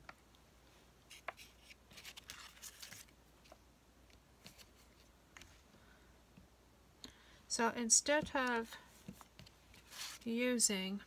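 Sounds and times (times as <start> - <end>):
paper rustle: 1.1 - 3.6, 9.7 - 10.3.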